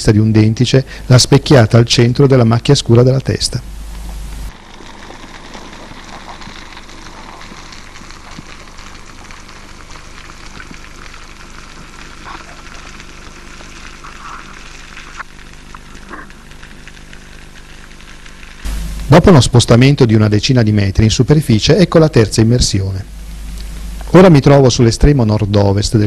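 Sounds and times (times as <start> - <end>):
faint low hum: 0.0 - 26.0
underwater crackling hiss: 3.9 - 19.6.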